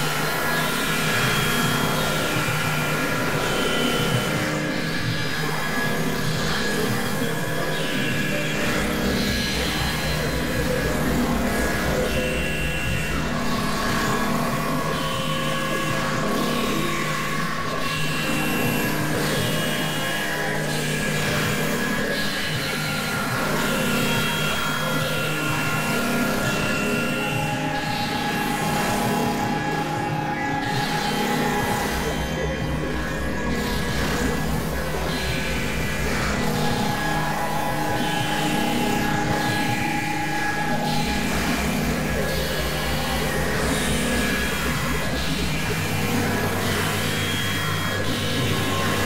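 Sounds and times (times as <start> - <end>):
experimental electronic music: 0.0 - 49.0.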